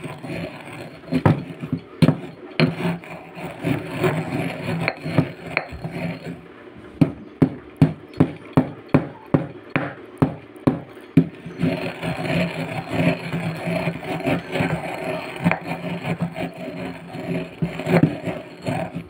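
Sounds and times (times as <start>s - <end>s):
pestle pounding eggshells in mortar: 0.0s - 6.4s, 7.0s - 19.0s
pestle grinding scrape in bowl: 0.0s - 19.0s.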